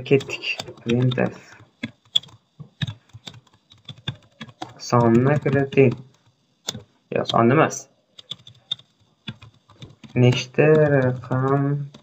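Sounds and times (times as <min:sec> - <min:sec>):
keyboard typing clicks: 0:00.0 - 0:07.4, 0:08.2 - 0:12.0.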